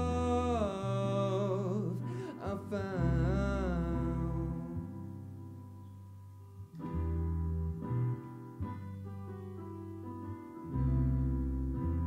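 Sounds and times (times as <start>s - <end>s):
electric bass: 0.0s - 12.0s
stage keyboard chords: 0.0s - 12.0s.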